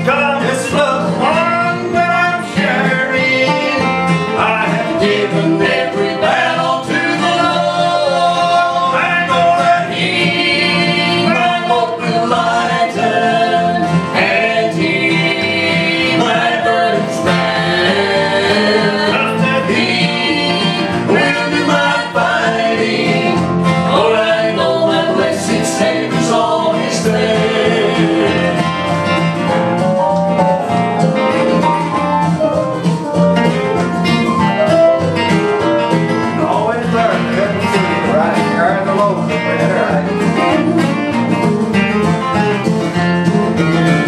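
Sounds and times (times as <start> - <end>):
acoustic guitar: 0.0 - 44.0
people singing in harmony: 0.2 - 29.6.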